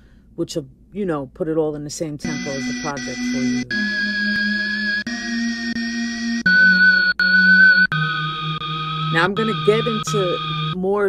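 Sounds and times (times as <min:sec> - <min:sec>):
sampled sustained musical tones: 0:02.2 - 0:11.0.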